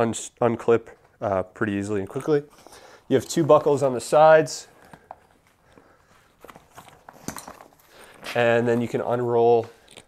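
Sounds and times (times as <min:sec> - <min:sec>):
bag buckles clicking: 0:06.4 - 0:09.0.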